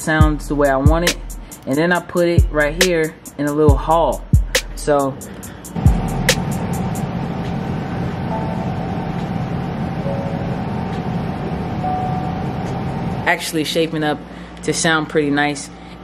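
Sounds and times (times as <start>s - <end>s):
low bass drone: 0.2s - 1.5s, 3.7s - 13.3s
deep bass hit: 5.8s - 7.4s.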